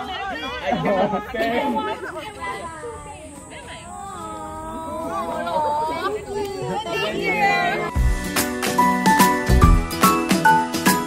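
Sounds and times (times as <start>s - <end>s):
people chattering: 0.0s - 9.6s.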